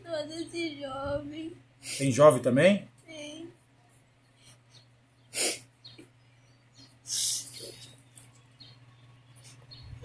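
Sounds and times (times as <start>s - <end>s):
sharp burst of breath: 5.3s - 5.7s.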